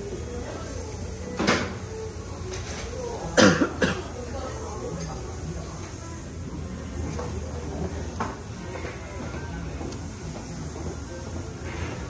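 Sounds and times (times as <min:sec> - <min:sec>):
person coughing: 0:03.4 - 0:04.1.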